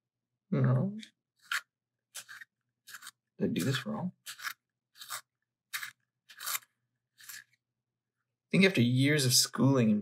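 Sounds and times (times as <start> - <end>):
pencil sharpener blade rasping: 1.4 - 7.6.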